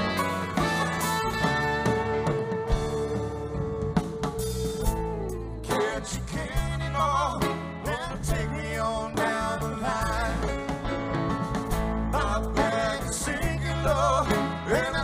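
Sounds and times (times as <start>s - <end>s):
bass guitar: 0.0s - 15.0s
drum kit: 0.0s - 15.0s
electric guitars: 0.0s - 15.0s.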